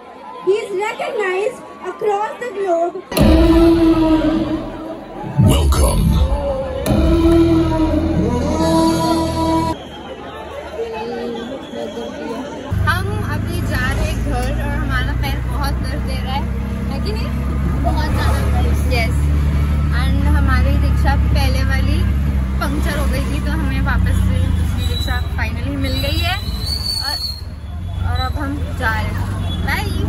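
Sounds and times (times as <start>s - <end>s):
crowd chatter: 0.0s - 30.0s
voices talking: 0.5s - 30.0s.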